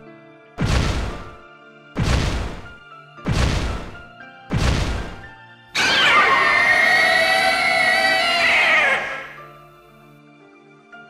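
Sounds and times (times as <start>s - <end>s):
monster roar: 5.8s - 9.4s.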